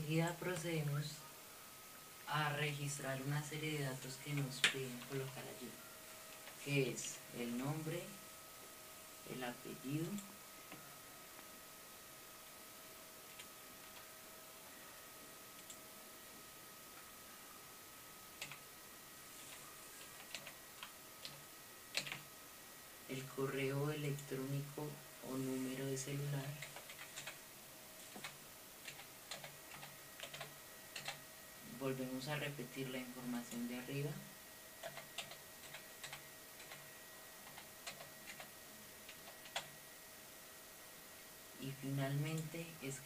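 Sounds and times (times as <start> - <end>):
faint electronic whine: 0.0 - 43.0
keyboard keys clicking: 20.1 - 22.2, 26.6 - 27.4, 28.1 - 31.2.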